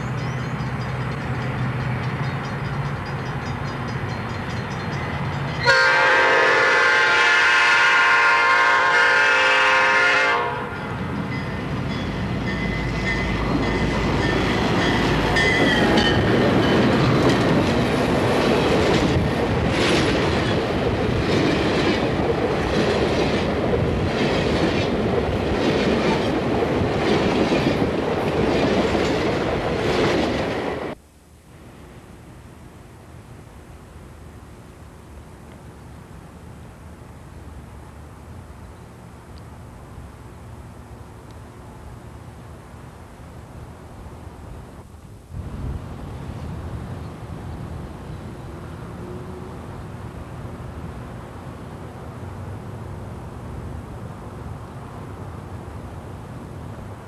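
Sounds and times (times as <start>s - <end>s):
diesel locomotives rumbling: 0.0s - 31.0s, 31.6s - 57.0s
train wheels roaring on rail: 0.0s - 31.0s, 32.8s - 57.0s
clacks over rail joints: 11.2s - 30.9s.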